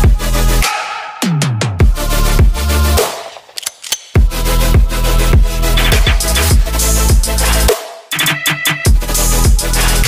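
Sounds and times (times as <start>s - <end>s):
electronic dance music: 4.2s - 10.0s.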